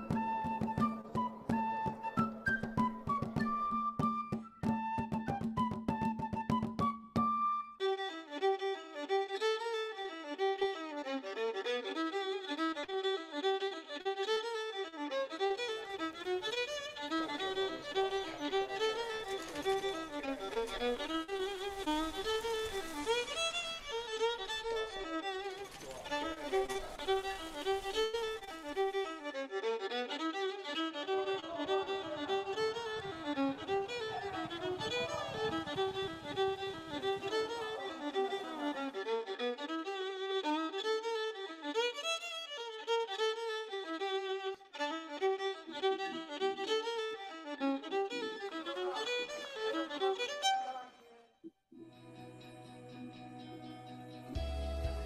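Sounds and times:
fast violin tune: 7.8s - 51.0s.

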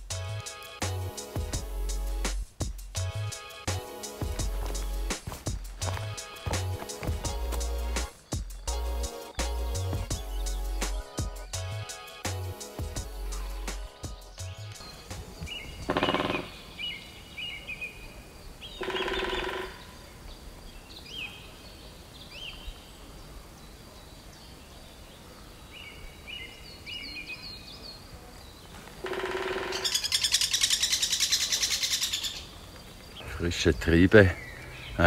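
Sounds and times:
songbirds chirping: 0.0s - 35.0s
rapid bird trilling song: 6.6s - 11.7s, 12.5s - 20.0s, 29.0s - 35.0s.

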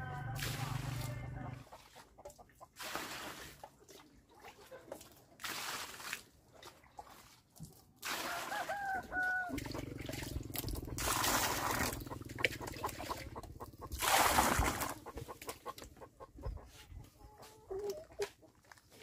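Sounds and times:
water splashing into mortar: 0.4s - 15.7s
chicken clucking: 8.8s - 19.0s.

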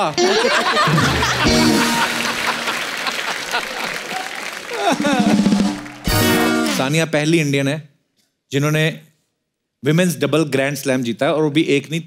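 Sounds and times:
audience applauding: 0.0s - 6.8s.

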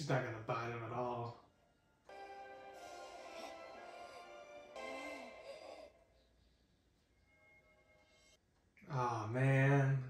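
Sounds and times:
sustained music: 1.8s - 6.3s.

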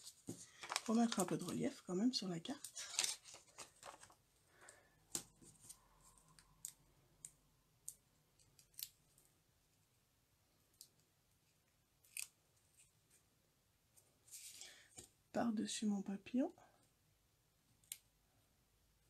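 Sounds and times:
paper rustling: 0.0s - 1.7s, 2.6s - 4.2s.

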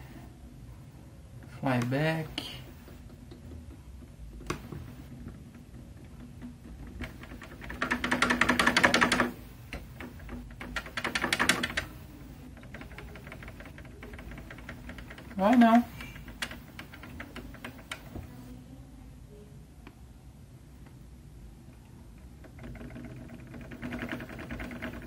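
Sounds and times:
low steady buzz: 0.0s - 25.0s
rapid clicking and rattling: 2.4s - 18.3s, 22.2s - 25.0s.

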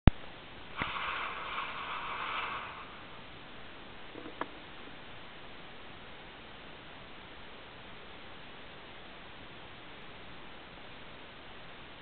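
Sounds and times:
phone speaker hissing noise: 0.7s - 3.4s.

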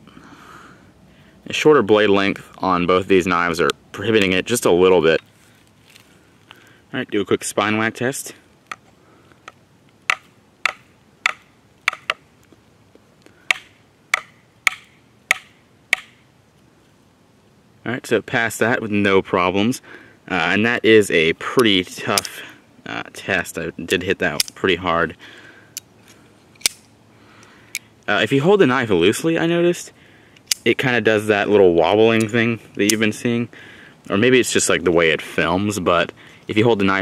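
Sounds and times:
knife spine whacked against wood: 13.5s - 16.2s
automatic knife blade snapping open: 26.6s - 26.9s.

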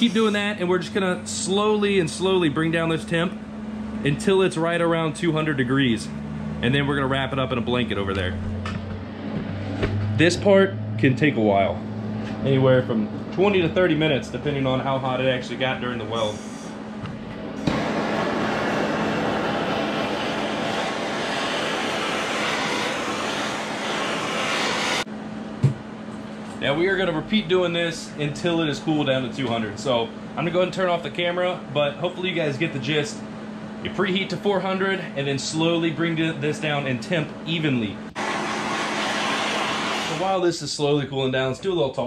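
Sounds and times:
gas torch burning: 0.0s - 3.4s, 15.2s - 25.1s, 38.1s - 40.6s.

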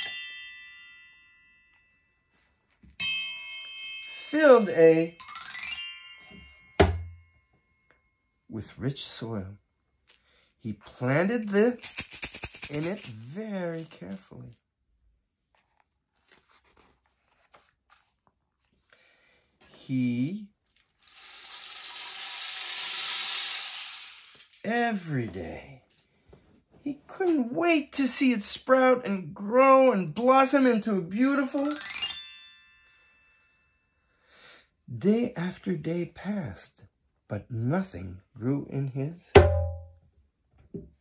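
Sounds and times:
metal chime ringing: 3.0s - 8.2s
rushing hissing sound effect: 21.2s - 24.3s.

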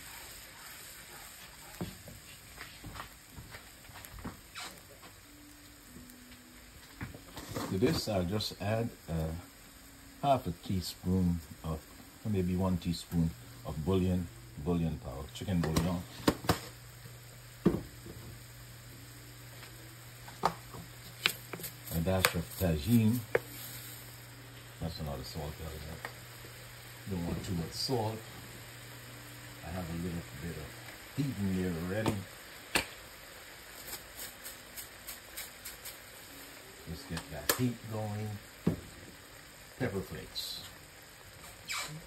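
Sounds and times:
sauce simmering in frying pan: 0.0s - 42.0s
sauce simmering with bubble pops: 15.6s - 16.8s, 19.5s - 22.6s, 31.9s - 36.4s.

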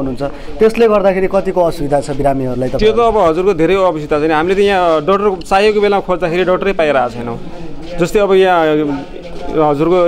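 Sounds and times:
man speaking into a microphone: 0.0s - 10.0s.

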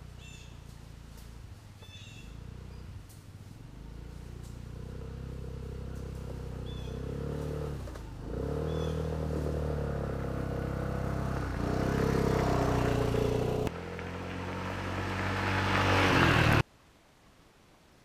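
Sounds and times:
scooter engine passing: 0.0s - 16.6s.

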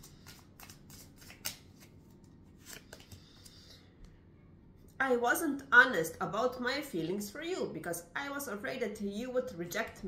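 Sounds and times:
cards being shuffled: 0.0s - 3.6s.

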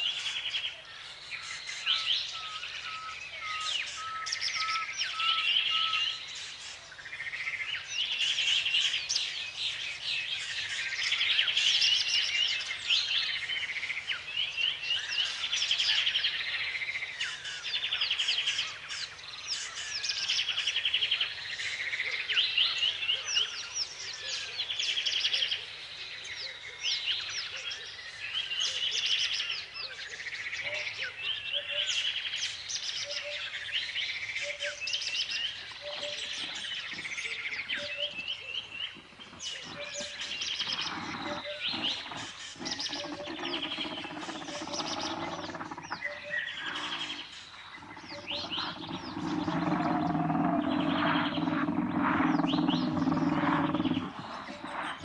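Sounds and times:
birds singing and chirping: 0.0s - 55.0s.

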